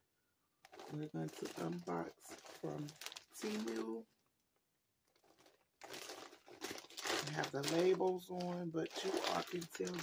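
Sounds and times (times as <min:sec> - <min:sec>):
plastic bag crinkling: 0:00.6 - 0:04.4, 0:05.0 - 0:10.0.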